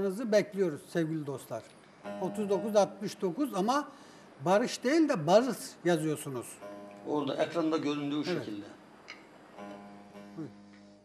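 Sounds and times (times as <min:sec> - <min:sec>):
plucked strings ringing chord: 0:02.0 - 0:03.8, 0:06.4 - 0:08.6, 0:09.6 - 0:11.0.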